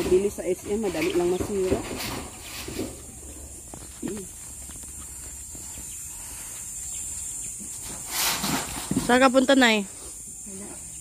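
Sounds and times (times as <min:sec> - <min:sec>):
high-pitched hiss: 0:00.1 - 0:11.0.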